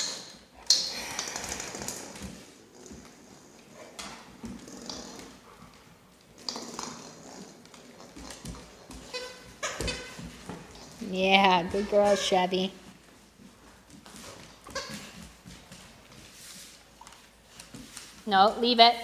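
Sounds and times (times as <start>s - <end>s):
dogs snuffling through toys: 0.9s - 9.4s.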